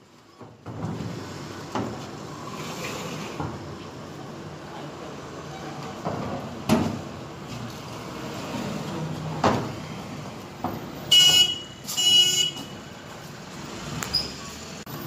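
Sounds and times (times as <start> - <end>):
outdoor background noise: 0.0 - 15.0
vehicle horn blasts: 11.1 - 12.8.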